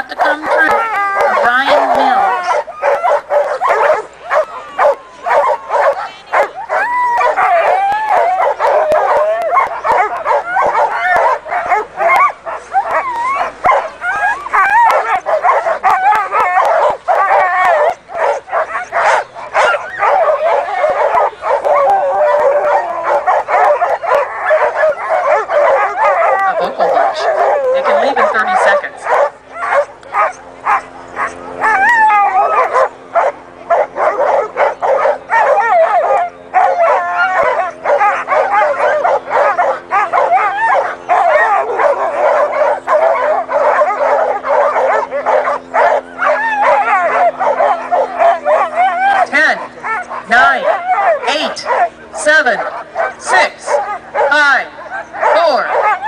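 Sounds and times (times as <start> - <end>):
dogs barking and yelping: 0.0 - 56.0
steady low hum: 0.0 - 56.0.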